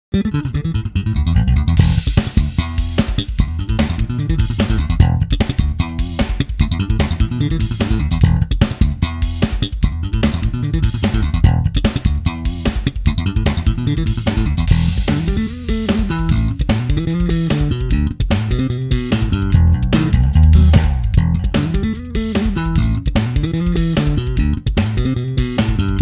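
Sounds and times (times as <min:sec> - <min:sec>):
slap bass guitar: 0:00.1 - 0:26.0.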